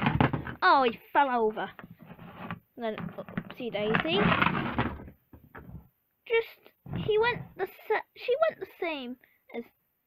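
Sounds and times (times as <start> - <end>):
wooden toy rolling on floor: 0.0 - 0.7, 1.7 - 5.9
child's voice: 0.6 - 1.8, 2.8 - 4.4, 6.3 - 9.8.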